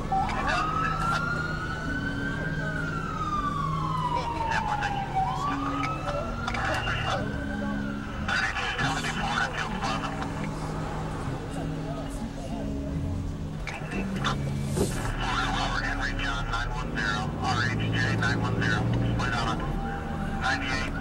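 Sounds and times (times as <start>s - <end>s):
emergency siren wailing: 0.0s - 21.0s.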